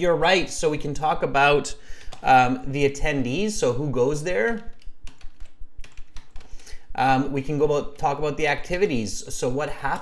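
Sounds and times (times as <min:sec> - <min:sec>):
computer keyboard typing: 0:02.0 - 0:02.5, 0:04.5 - 0:06.7.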